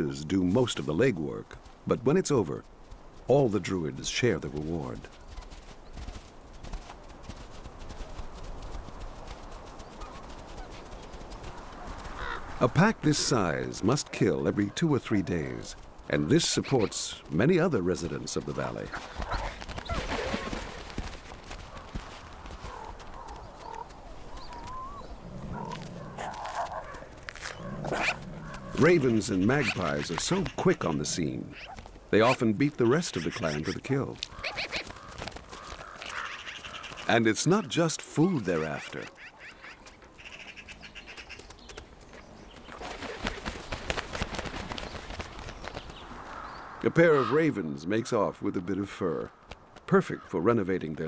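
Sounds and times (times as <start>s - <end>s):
wings fluttering: 4.5s - 37.2s, 38.3s - 46.8s
ravens calling: 9.9s - 47.8s
faint wavering calls: 23.6s - 26.7s
wolf growling low: 25.1s - 26.9s, 27.5s - 28.8s.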